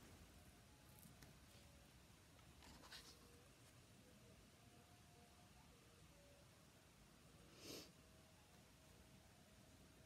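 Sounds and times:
book pages rustling: 2.6s - 3.3s.

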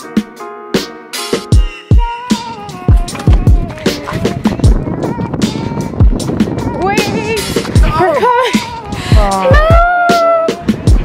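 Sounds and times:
hip hop beat: 0.0s - 11.0s
deep kick drums: 2.9s - 10.1s.

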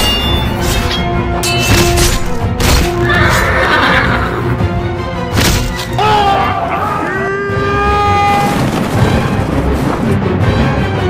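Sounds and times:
film score music: 0.0s - 11.0s
horse neighing: 3.0s - 4.5s.

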